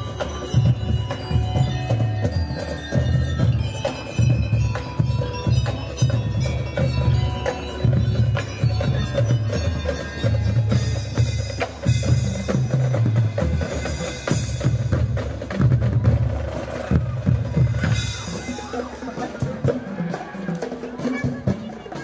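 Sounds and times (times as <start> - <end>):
mallet keyboards: 0.0 - 15.7
bass drums: 0.0 - 22.0
snare drums: 0.0 - 22.0.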